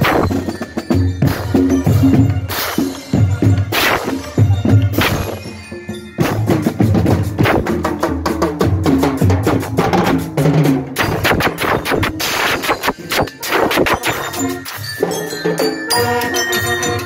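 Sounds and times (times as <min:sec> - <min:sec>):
cymbals: 0:00.0 - 0:08.3, 0:11.0 - 0:17.0
snare and bass drumming: 0:00.0 - 0:14.6
brass horns playing tune: 0:15.8 - 0:17.0.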